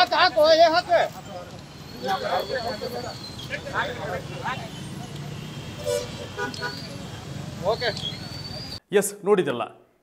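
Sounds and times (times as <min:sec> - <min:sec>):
crowd talking: 0:00.0 - 0:08.8
street traffic hum: 0:00.0 - 0:08.8
short horn toots: 0:05.7 - 0:07.0.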